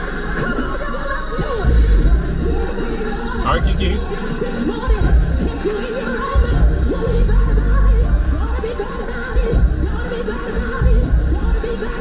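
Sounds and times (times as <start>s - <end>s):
gospel music with heavy bass: 0.0s - 12.0s.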